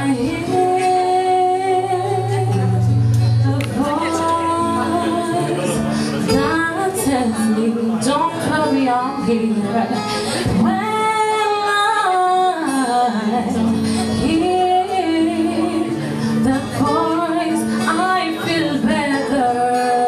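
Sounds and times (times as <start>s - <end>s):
electric guitar: 0.0s - 20.0s
woman singing into microphone: 0.0s - 20.0s.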